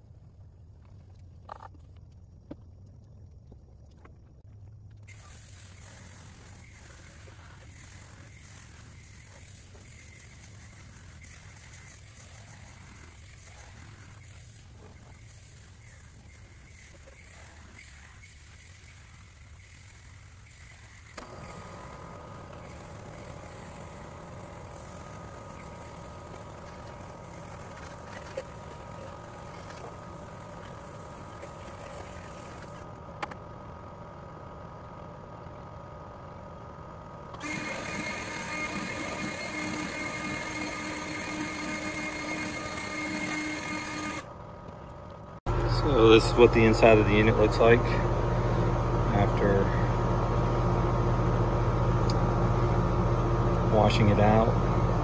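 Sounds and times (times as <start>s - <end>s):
steady mechanical hum: 0.0s - 55.0s
garden hose spraying water: 5.0s - 32.8s.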